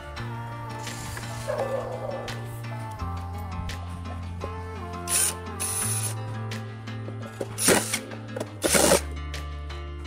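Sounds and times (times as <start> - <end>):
drill driving screw into wood: 5.1 - 6.2, 7.6 - 9.1.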